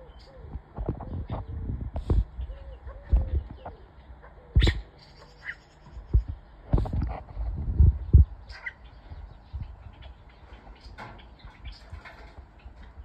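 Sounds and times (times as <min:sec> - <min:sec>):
starlings giving harsh calls: 0:02.4 - 0:06.5
dull low thumps: 0:06.0 - 0:10.1.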